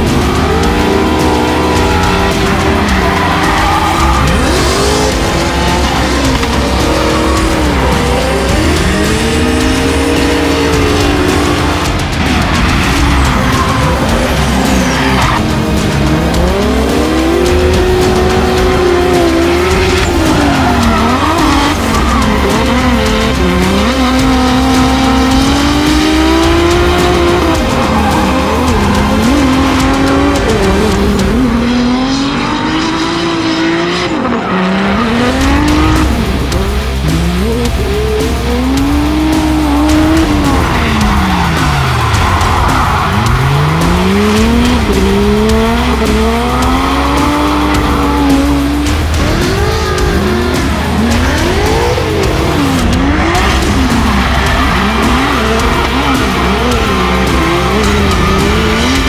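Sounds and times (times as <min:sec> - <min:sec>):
background music with low beat: 0:00.0 - 0:59.0
car engines revving: 0:00.0 - 0:59.0.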